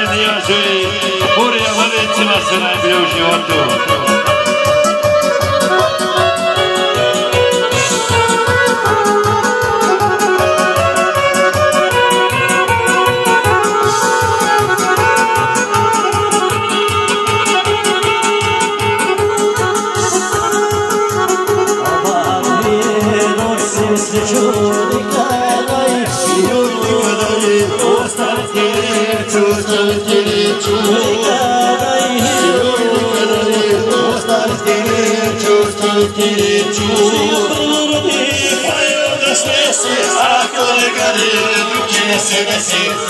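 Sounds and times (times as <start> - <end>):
accordion: 0.0 - 43.0
folk band dance tune: 0.0 - 43.0.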